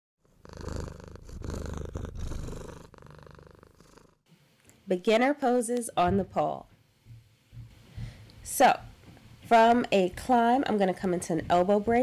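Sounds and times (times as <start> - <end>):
cat purring: 0.2 - 4.2.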